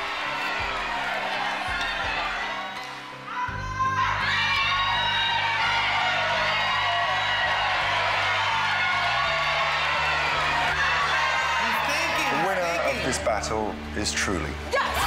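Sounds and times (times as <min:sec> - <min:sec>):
audience whooping and shouting: 0:00.0 - 0:13.2.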